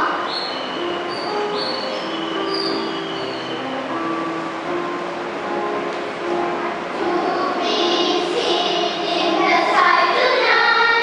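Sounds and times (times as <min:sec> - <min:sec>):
high-pitched wheel squeals: 0:00.1 - 0:03.8.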